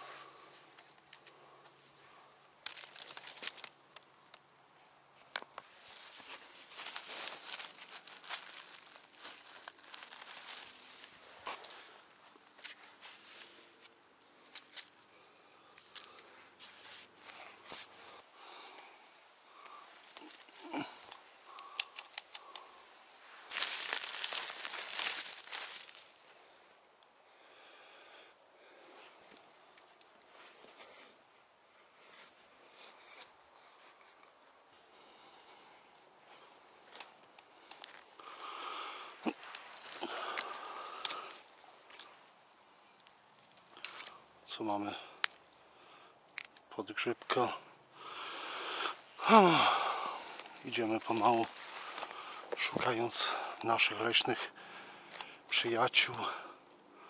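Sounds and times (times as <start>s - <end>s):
footsteps through dry leaves: 2.6s - 3.8s, 5.8s - 13.5s, 19.9s - 20.9s, 23.3s - 26.3s, 39.1s - 42.2s, 48.4s - 53.6s
wicker basket being handled: 5.6s - 11.9s, 23.4s - 26.2s.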